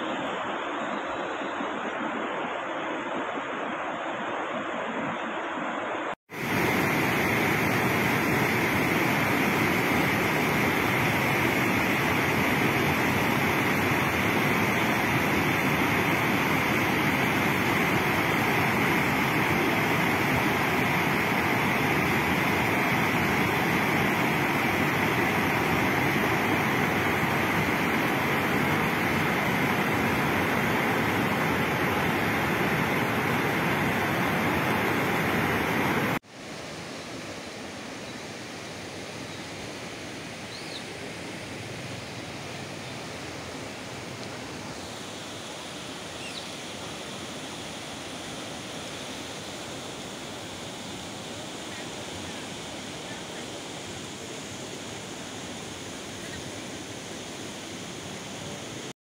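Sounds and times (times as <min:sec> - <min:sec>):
water rushing over rocks: 0:00.0 - 0:36.2.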